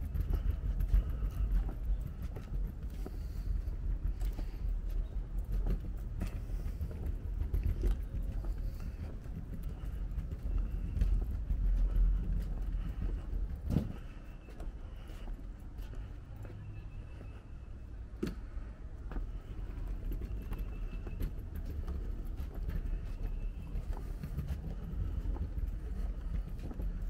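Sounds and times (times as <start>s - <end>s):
footsteps on wooden boardwalk: 0.0s - 27.0s
low uneven rumble: 0.0s - 27.0s.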